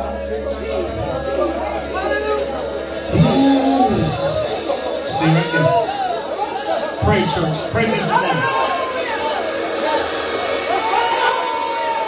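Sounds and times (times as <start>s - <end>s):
people praying aloud: 0.0s - 12.0s.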